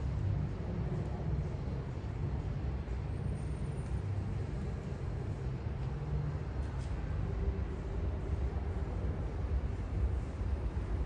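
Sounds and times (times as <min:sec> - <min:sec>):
street ambience rumble: 0:00.0 - 0:11.0.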